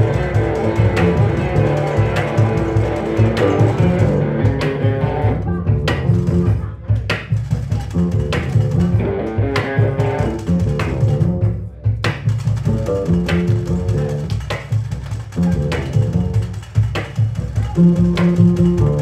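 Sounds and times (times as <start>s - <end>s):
plucked double bass: 0.0s - 19.0s
sharp percussion strikes: 0.0s - 19.0s.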